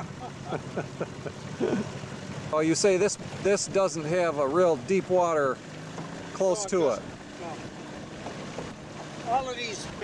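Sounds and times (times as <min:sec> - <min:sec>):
outboard motor running: 0:00.0 - 0:10.0
water wash: 0:00.0 - 0:10.0.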